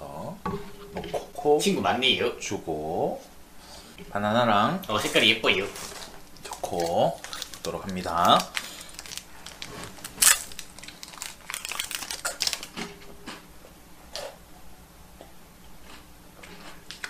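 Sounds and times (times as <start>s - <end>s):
plastic wrapper crinkling and tearing: 5.0s - 12.9s
chewing biscuit: 5.7s - 13.4s.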